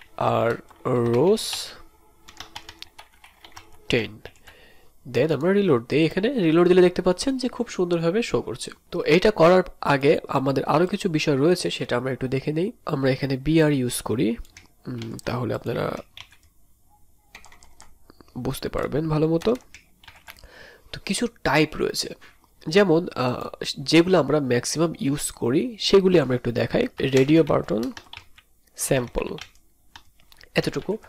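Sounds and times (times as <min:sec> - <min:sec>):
faint computer keyboard keystrokes: 0:02.3 - 0:04.5, 0:15.9 - 0:16.5, 0:17.3 - 0:18.4, 0:19.4 - 0:20.5, 0:27.0 - 0:30.6.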